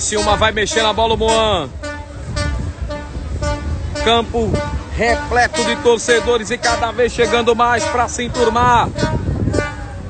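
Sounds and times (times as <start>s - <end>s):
horns tooting: 0.0s - 10.0s.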